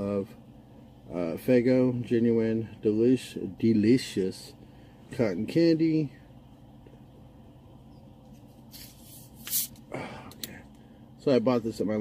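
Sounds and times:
faint low hum: 0.0 - 12.0
carbonation hiss: 8.7 - 9.8.

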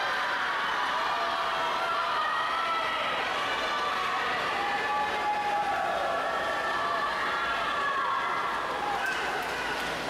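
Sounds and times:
crowd cheering and shouting: 0.0 - 10.0.

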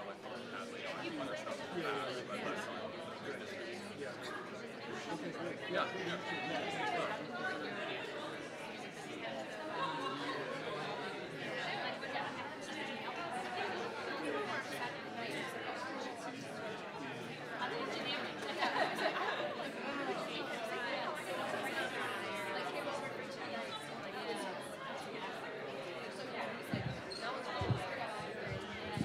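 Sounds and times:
murmur of many conversations: 0.0 - 29.0.

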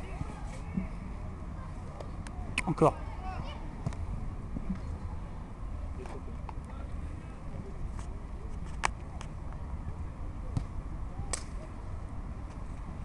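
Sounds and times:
faint distant voices: 0.0 - 13.0.

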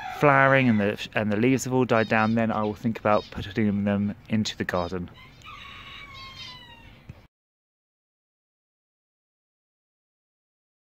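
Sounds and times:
high-pitched animal call: 5.1 - 7.1.

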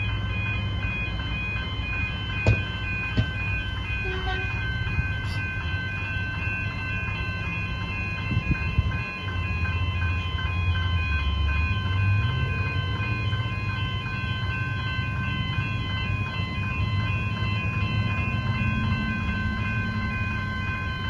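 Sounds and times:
level crossing warning bells: 0.0 - 21.0
knocks: 2.4 - 3.4.

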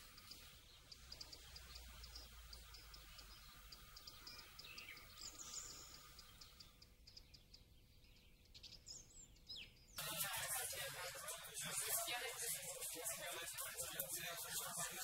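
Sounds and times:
faint outdoor ambience: 0.0 - 15.0
small birds chirping: 0.0 - 15.0.

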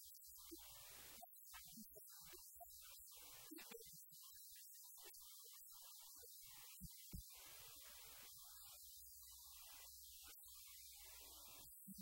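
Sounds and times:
faint recording hiss: 0.0 - 12.0.

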